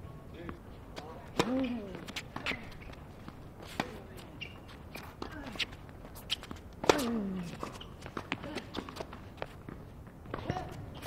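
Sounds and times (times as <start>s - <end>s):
tennis ball bounces: 1.3s - 3.0s.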